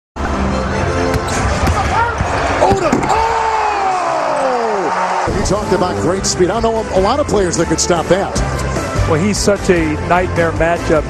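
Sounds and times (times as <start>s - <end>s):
arena crowd noise: 0.2s - 11.0s
sneakers squeaking: 1.1s - 2.4s.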